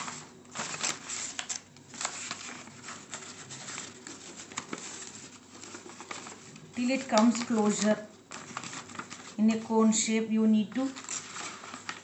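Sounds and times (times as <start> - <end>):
paper rustling and crinkling: 0.0 - 12.0.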